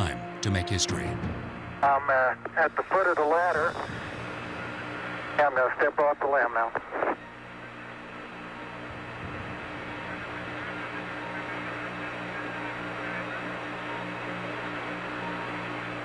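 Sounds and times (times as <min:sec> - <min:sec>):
radio hiss and hum: 0:01.8 - 0:07.4.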